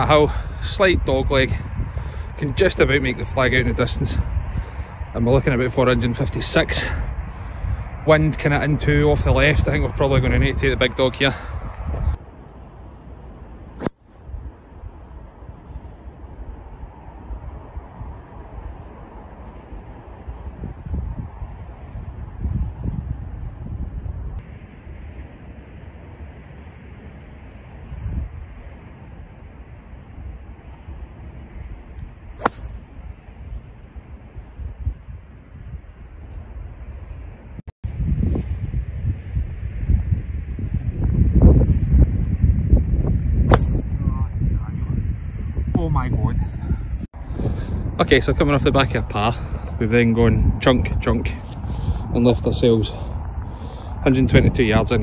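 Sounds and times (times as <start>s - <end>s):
wind rumbling on microphone: 0.0s - 55.0s
golf club striking ball: 13.8s - 14.1s, 32.0s - 32.9s, 43.5s - 44.0s.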